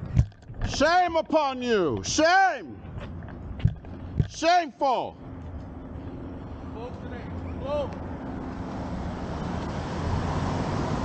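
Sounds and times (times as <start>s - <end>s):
car driving past: 8.2s - 11.0s.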